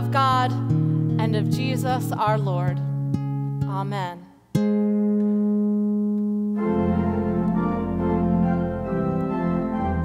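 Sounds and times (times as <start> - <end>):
background music: 0.0 - 10.0
sustained organ chord: 6.3 - 10.0.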